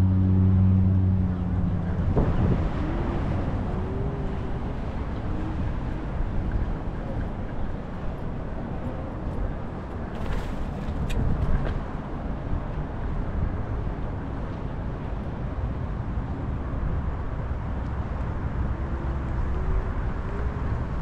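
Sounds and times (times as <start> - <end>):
distant city traffic: 0.0 - 21.0
wind on microphone: 0.0 - 21.0.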